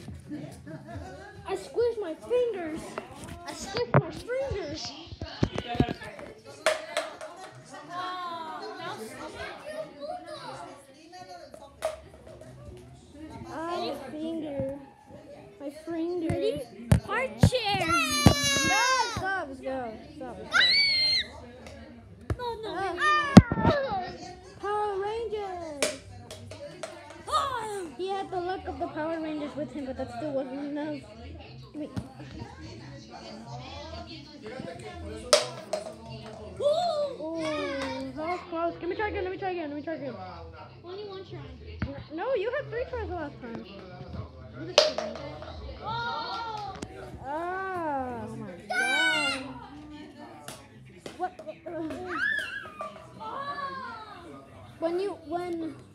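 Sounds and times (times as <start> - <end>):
plastic bottle clacking on tile: 5.3 - 7.6, 11.8 - 12.6, 25.8 - 27.3, 35.3 - 36.4, 44.8 - 45.6.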